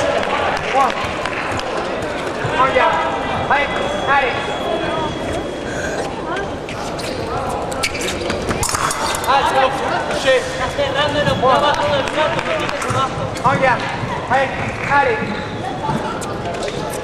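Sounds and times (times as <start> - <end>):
voices in a hall: 0.0 - 17.0
shoes squeaking: 1.8 - 17.0.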